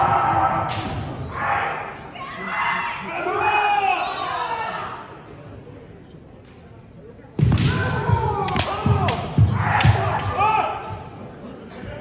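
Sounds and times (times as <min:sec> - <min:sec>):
people shouting in a hall: 0:00.0 - 0:05.3, 0:07.4 - 0:12.0.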